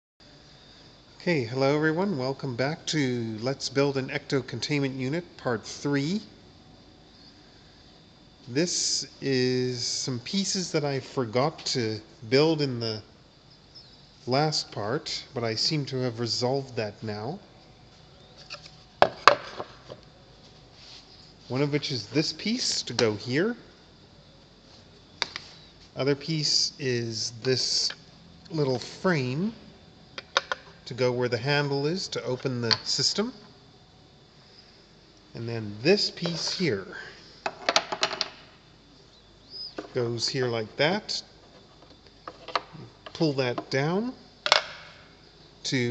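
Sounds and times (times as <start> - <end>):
wooden pieces knocking on workbench: 19.0 - 20.0, 37.4 - 38.4, 44.4 - 44.9
small parts clicking and tapping: 44.4 - 44.9.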